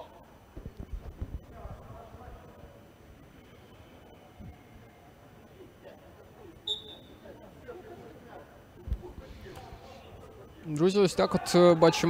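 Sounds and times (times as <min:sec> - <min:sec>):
players shouting: 0:11.0 - 0:12.0.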